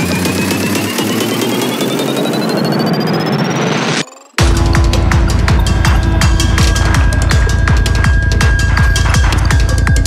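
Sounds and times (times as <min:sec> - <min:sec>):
rising synth sweep: 0:00.0 - 0:08.9
noisy synth layers: 0:00.0 - 0:10.0
rolling bass line: 0:04.4 - 0:10.0.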